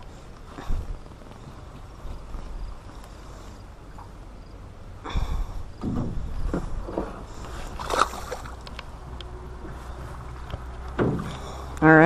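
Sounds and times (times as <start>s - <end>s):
steady low rumble: 0.0s - 12.0s
scuffs and knocks in aluminum boat: 5.8s - 8.7s, 9.6s - 11.7s.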